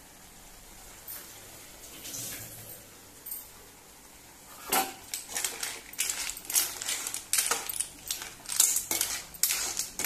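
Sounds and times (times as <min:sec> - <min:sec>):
clam shells clinking in pan: 0:05.0 - 0:10.0.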